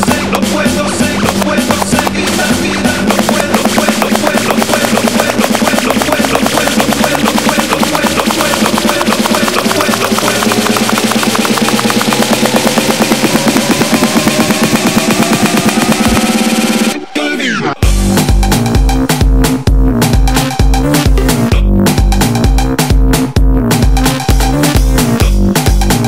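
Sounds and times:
fast snare drum roll: 0.0s - 17.0s
rising synth line: 2.4s - 21.2s.

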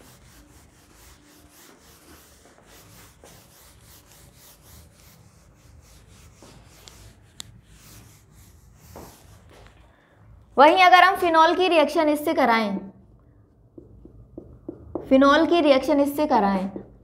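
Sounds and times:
duster rubbing whiteboard: 0.0s - 9.8s.

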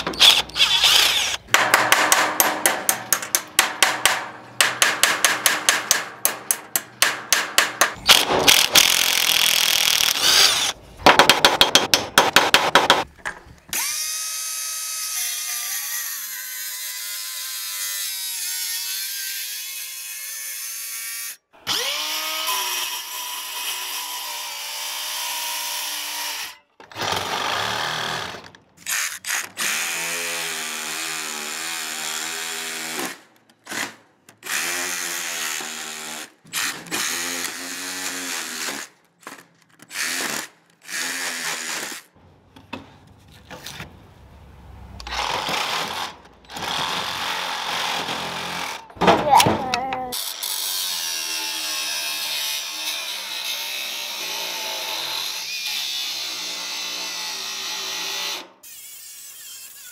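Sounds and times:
angle grinder grinding steel: 0.0s - 1.5s
impact wrench hammering on bolt: 1.4s - 9.0s, 11.0s - 13.1s.

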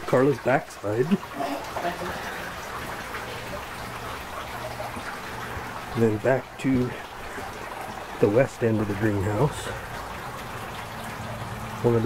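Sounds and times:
water trickling: 0.0s - 12.0s.

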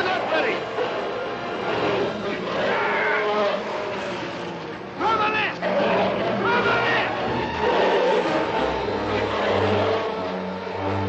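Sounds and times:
people shouting: 0.0s - 4.0s, 5.0s - 11.0s
dramatic orchestral film score: 0.0s - 11.0s.

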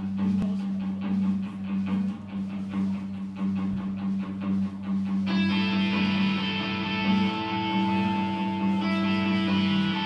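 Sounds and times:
electric guitar through amplifier: 0.0s - 10.0s.

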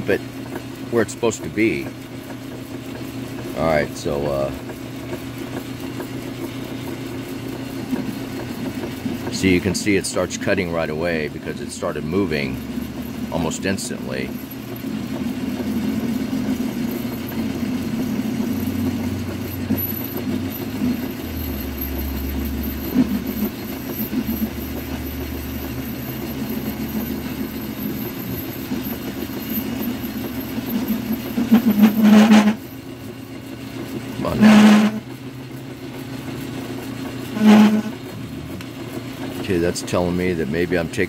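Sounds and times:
metal lathe motor hum: 0.0s - 41.0s
short loud lathe bursts: 31.4s - 32.7s, 34.2s - 35.1s, 37.3s - 38.1s.

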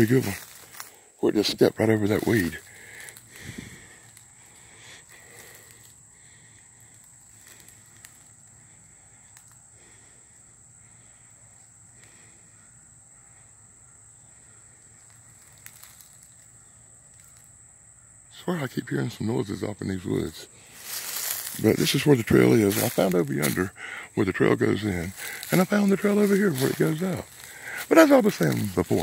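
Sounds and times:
footsteps in dry leaves: 0.0s - 1.0s, 2.0s - 5.9s, 15.0s - 16.4s, 20.6s - 23.7s, 24.8s - 29.0s
small rustles: 0.0s - 1.0s, 2.0s - 10.1s, 14.8s - 17.6s, 20.6s - 23.7s, 24.8s - 29.0s
high insect drone: 0.0s - 29.0s.

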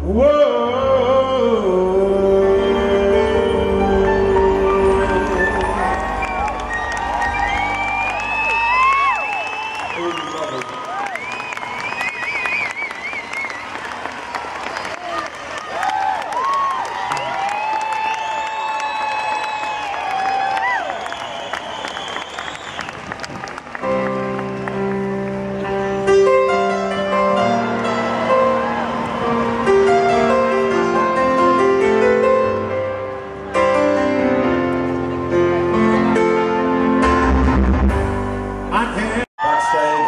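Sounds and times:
piano chord: 0.5s - 9.3s, 23.8s - 39.2s
crowd cheering: 5.2s - 25.8s, 26.7s - 31.7s, 39.4s - 40.0s
audience applauding: 5.2s - 26.0s, 27.4s - 31.0s
rising and falling whistles: 6.2s - 13.7s, 17.2s - 20.0s, 20.8s - 23.1s.

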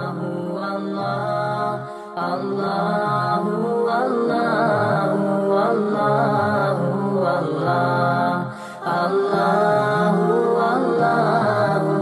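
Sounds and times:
melodic vocal chanting: 0.0s - 12.0s.

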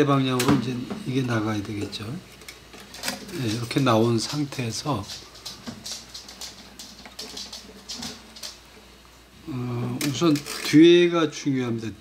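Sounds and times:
wire scratching and clicking: 1.7s - 8.7s, 10.0s - 10.9s.

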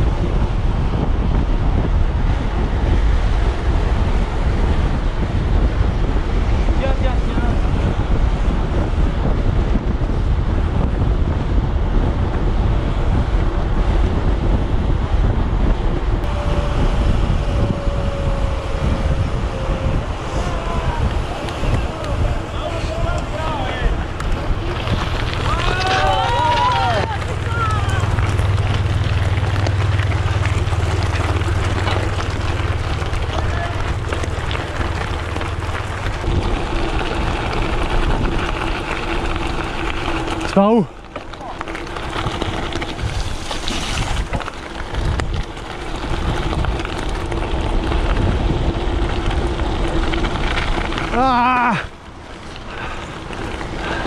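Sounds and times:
bike tyres rolling on gravel: 0.0s - 54.0s
wind buffeting microphone: 0.0s - 54.0s.

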